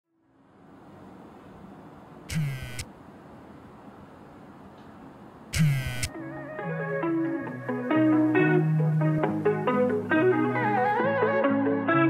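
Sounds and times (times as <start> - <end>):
phone vibrating on a hard table: 2.3 - 2.9, 5.6 - 6.1.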